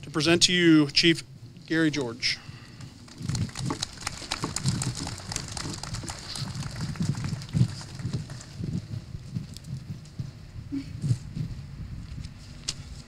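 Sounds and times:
low uneven rumble: 2.8s - 11.9s
audience applauding: 3.1s - 8.8s.

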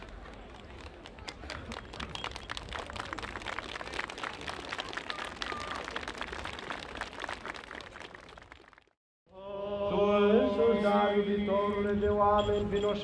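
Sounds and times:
crowd applauding: 0.0s - 9.0s.

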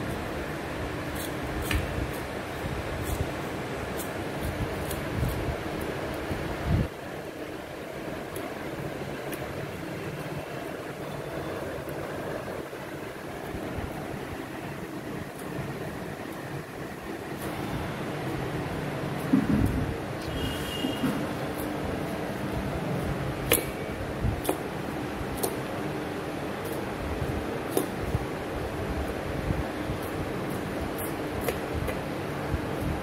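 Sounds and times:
steady background hum: 0.0s - 33.0s.

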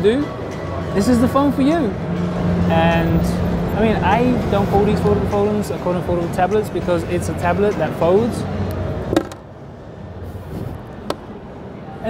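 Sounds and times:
large hall background noise: 0.0s - 12.0s.

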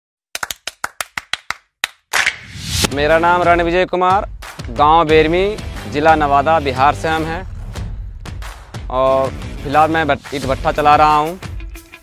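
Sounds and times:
sharp hand claps: 0.3s - 2.5s.

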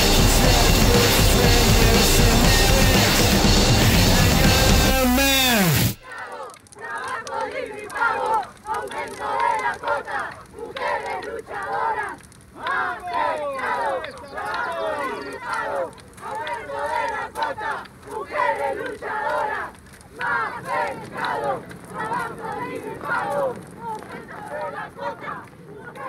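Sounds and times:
music with drums slowing down: 0.0s - 6.0s
crowd shouting and chanting: 0.0s - 26.0s.

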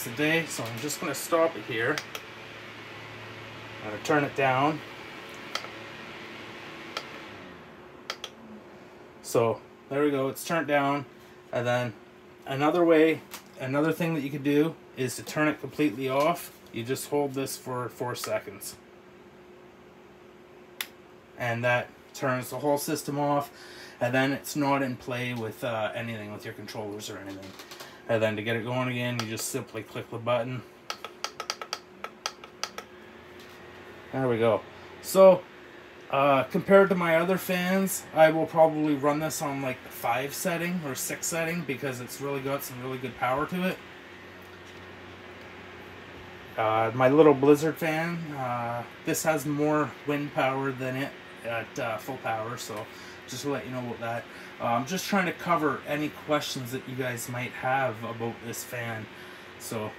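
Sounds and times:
fan airflow hiss: 0.0s - 59.9s
fan control clicks: 0.1s - 2.3s, 5.3s - 5.8s, 6.9s - 7.2s, 8.0s - 8.4s, 18.2s - 18.4s, 20.8s - 21.0s, 29.1s - 29.7s, 30.9s - 33.6s.

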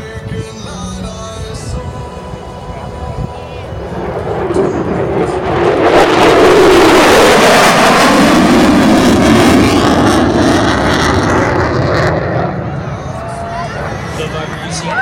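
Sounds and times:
fighter jet roaring past: 3.7s - 15.0s.

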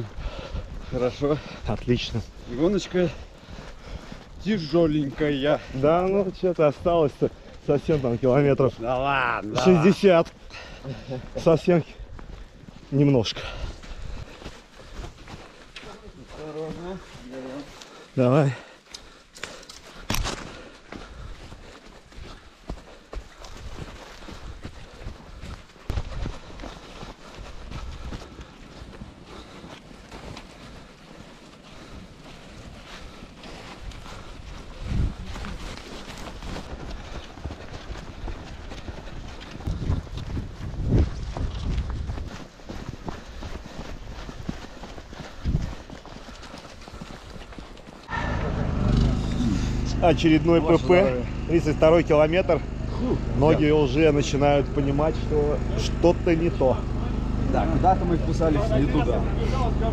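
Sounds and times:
footsteps in snow: 0.0s - 59.9s
wind rumbling on microphone: 33.8s - 37.2s, 38.2s - 44.5s, 45.2s - 46.0s.

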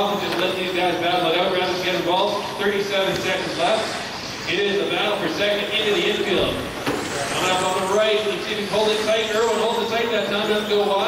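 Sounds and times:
man commentating: 0.0s - 11.0s.

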